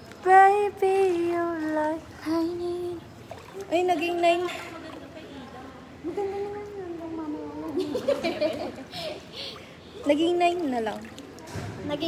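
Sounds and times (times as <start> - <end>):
woman singing or humming: 0.2 - 5.0, 5.9 - 8.1.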